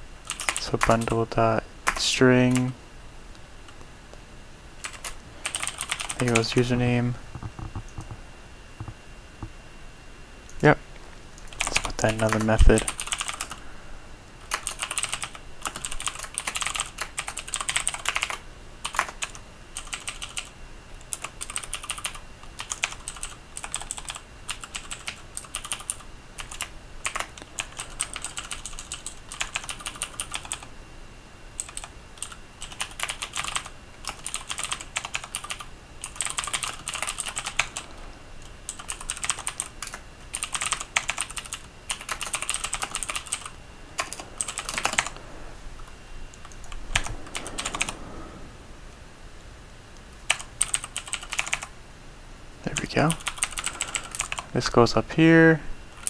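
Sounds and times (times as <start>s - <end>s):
computer keyboard typing: 0.2s - 2.7s, 4.8s - 6.7s, 11.4s - 13.6s, 14.4s - 30.7s, 31.6s - 37.9s, 38.7s - 45.1s, 46.4s - 48.0s, 50.2s - 51.7s, 52.7s - 54.5s.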